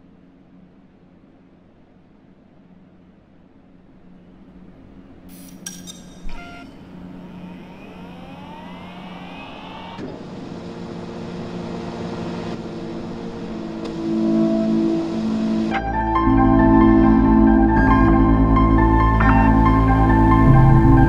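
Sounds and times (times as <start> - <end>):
layered steady tones: 4.6 - 21.0
rising whirring sweeps: 6.8 - 15.9
cinematic hit: 19.1 - 21.0.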